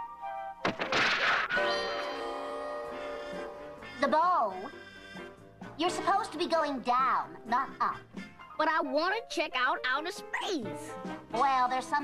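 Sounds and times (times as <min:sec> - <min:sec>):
background music held chord: 0:01.6 - 0:12.0.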